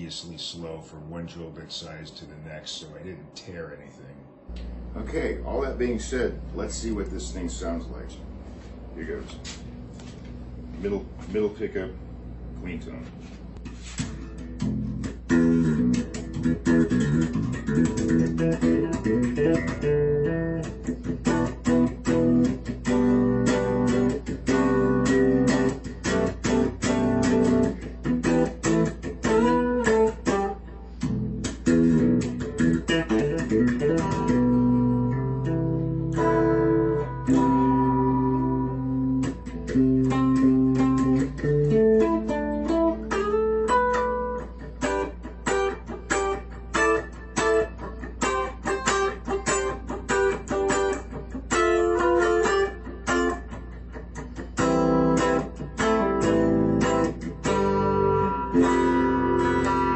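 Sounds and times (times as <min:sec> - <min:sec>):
clean electric guitar: 0:00.6 - 0:59.9.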